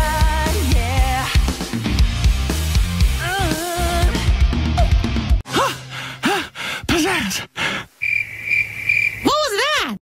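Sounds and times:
crickets chirring: 7.9s - 9.3s.

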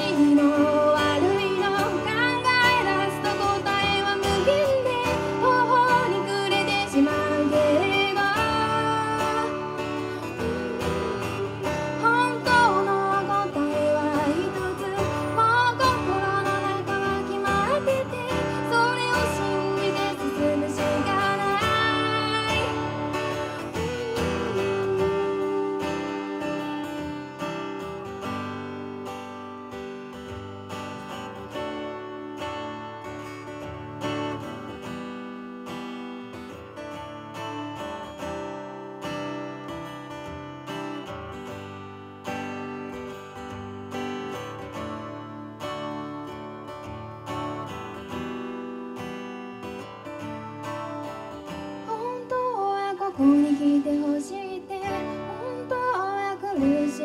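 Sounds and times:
woman singing: 0.0s - 28.0s, 50.1s - 57.0s
acoustic guitar strumming: 0.0s - 57.0s.

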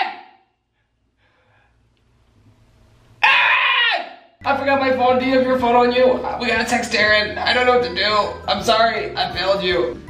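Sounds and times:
man wailing: 3.2s - 4.2s.

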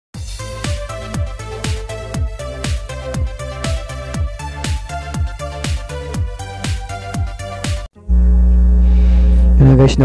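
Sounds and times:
loud steady low hum: 8.0s - 10.0s
man's voice: 9.6s - 10.0s.

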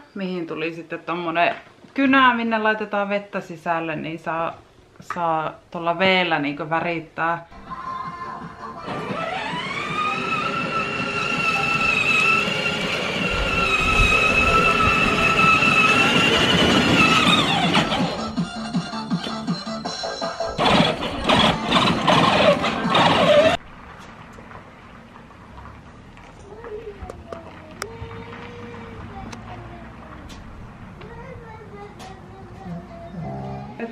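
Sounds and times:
background music: 7.6s - 12.6s, 17.4s - 23.4s
toy car electric motor whining: 8.8s - 18.6s, 20.5s - 23.6s
knocks and rattles: 20.6s - 25.7s.

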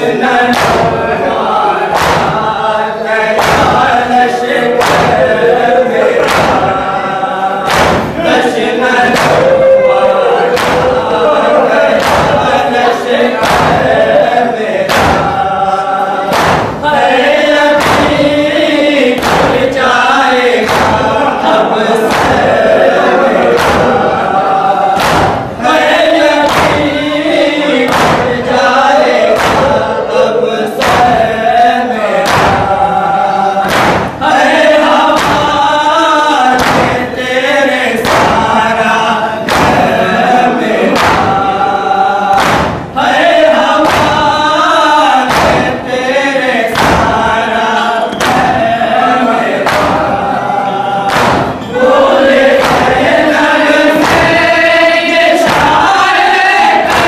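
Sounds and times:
crowd chest-beating strike: 0.0s - 57.0s
men chanting a lament: 0.0s - 57.0s.

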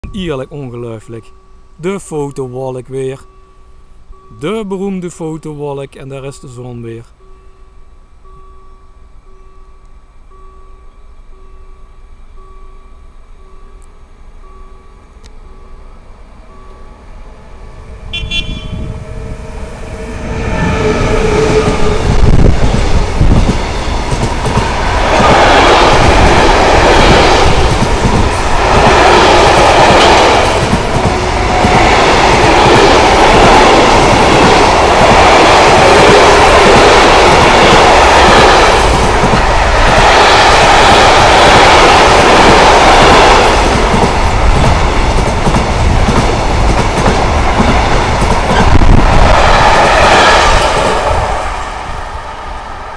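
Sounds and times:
electric locomotive passing: 0.0s - 52.9s.

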